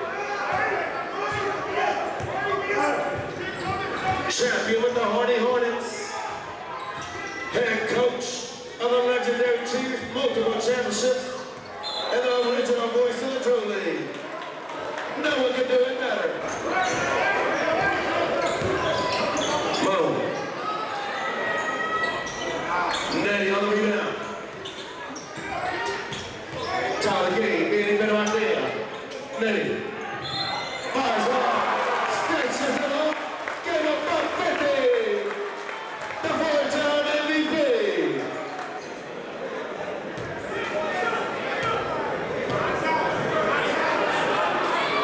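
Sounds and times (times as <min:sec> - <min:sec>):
crowd voices and shouts: 0:00.0 - 0:45.0.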